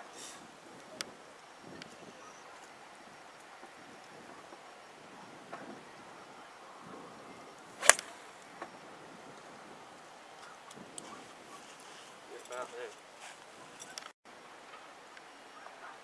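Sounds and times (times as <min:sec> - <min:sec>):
golf club striking ball: 0:07.8 - 0:08.2.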